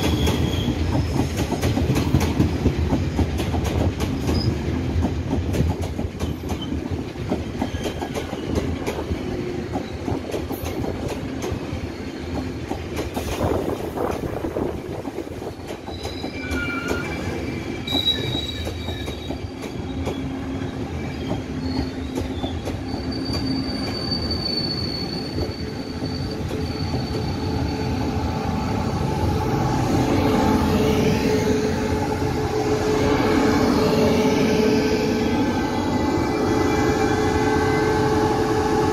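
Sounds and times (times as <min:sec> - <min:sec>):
wheel and brake squeals: 0:00.0 - 0:01.3, 0:07.6 - 0:08.8, 0:15.8 - 0:28.7
train equipment hum: 0:00.0 - 0:38.9
train rolling rumble: 0:00.0 - 0:38.9.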